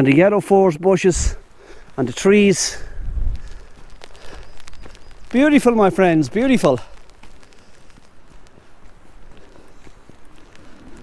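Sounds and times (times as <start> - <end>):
footsteps on wet trail: 0.0 - 11.0
small ticks: 2.9 - 11.0.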